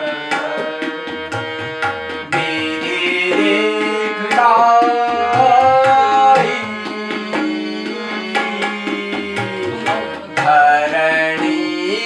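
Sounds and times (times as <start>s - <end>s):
harmonium playing held notes: 0.0s - 12.0s
tabla: 0.0s - 12.0s.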